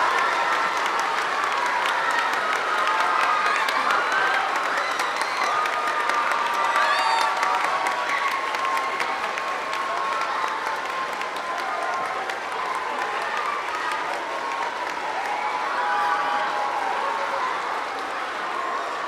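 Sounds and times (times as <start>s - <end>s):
audience applauding: 0.0s - 19.0s.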